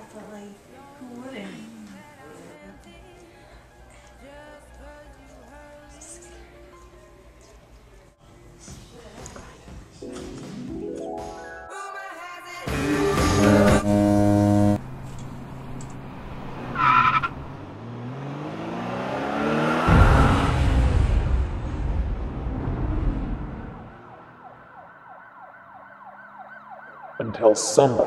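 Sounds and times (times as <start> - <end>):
engine rising in pitch: 12.7 - 14.9, 15.6 - 24.9
car crash: 19.8 - 24.0
siren wailing: 23.7 - 27.8.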